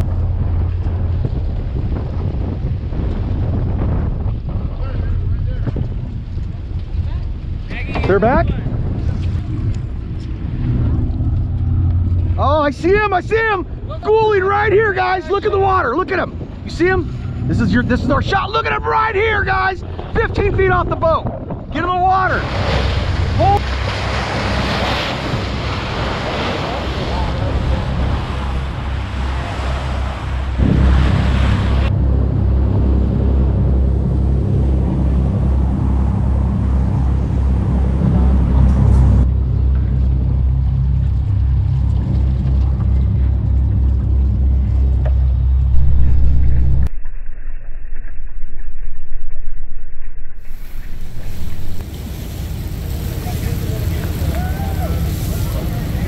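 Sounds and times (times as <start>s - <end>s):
boat engine rumbling: 0.0s - 48.3s, 50.3s - 56.0s
wind on microphone: 0.0s - 56.0s
rushing water: 16.6s - 46.9s, 50.4s - 56.0s.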